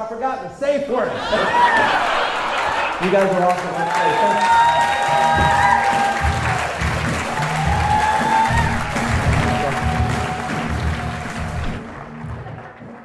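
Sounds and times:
audience applauding and cheering: 1.1s - 13.0s
music playing: 1.1s - 13.0s.

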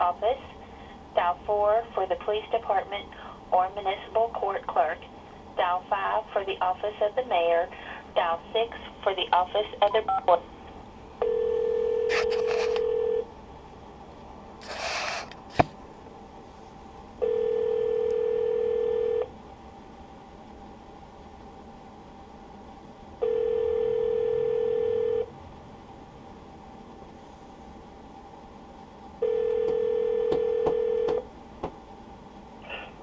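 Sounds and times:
telephone ringback tone: 11.2s - 13.2s, 17.2s - 19.3s, 23.2s - 25.3s, 29.2s - 31.2s.

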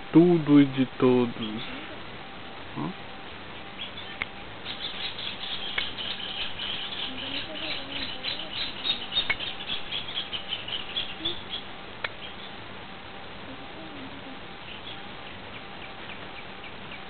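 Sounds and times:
small birds chirping: 0.0s - 17.0s.

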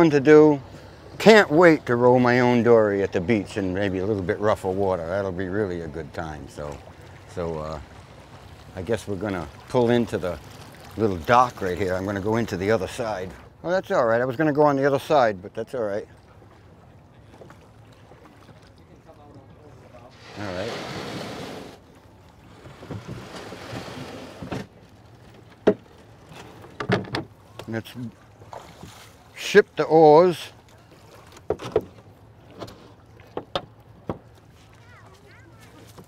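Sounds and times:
water sounds from oars: 0.0s - 36.0s
wooden oars knocking in oarlocks: 25.3s - 27.7s, 30.9s - 34.8s.

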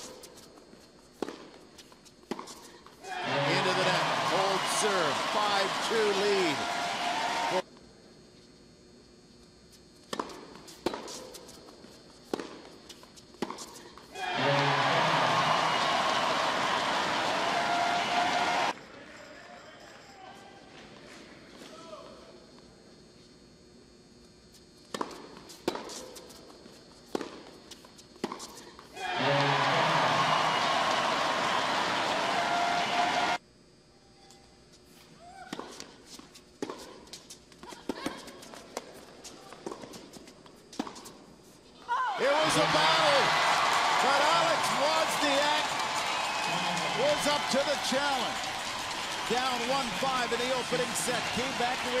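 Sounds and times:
racket hitting tennis ball: 1.1s - 4.5s, 10.0s - 15.3s, 24.9s - 30.3s, 35.4s - 41.2s
crowd cheering and applauding: 3.1s - 7.6s, 14.2s - 18.8s, 29.0s - 33.4s, 42.2s - 52.0s.

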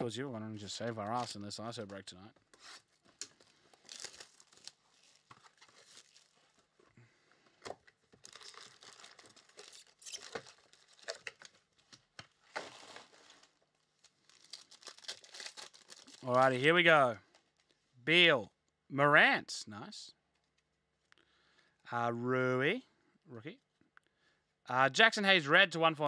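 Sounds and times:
foil packs crinkling and tearing: 0.9s - 1.5s, 2.6s - 6.8s, 7.5s - 16.5s.

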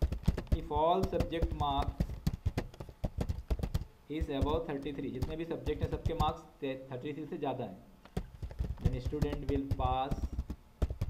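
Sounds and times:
computer keyboard typing: 0.0s - 6.4s, 8.2s - 11.0s.

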